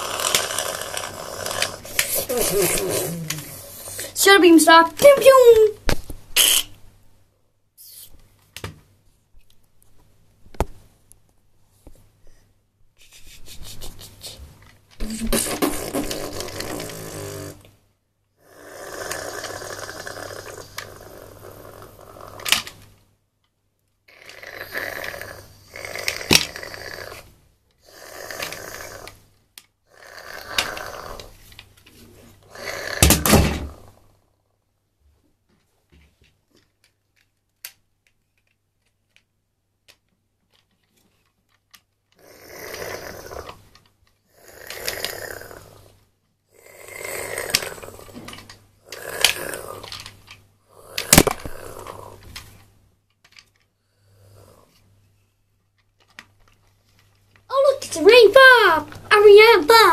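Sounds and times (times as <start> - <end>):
person breathing noisily or snoring: 53.9 - 54.8.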